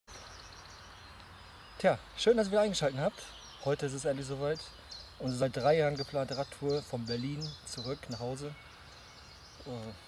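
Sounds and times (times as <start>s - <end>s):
distant birdsong: 0.1s - 10.0s.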